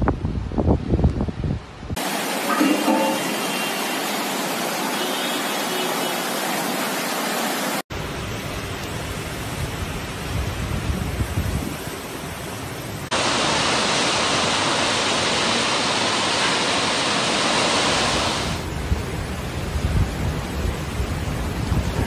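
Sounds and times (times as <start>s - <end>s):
strong wind rumbling: 0.0s - 2.0s, 9.5s - 16.3s, 17.4s - 22.0s
heavy rain: 1.9s - 22.0s.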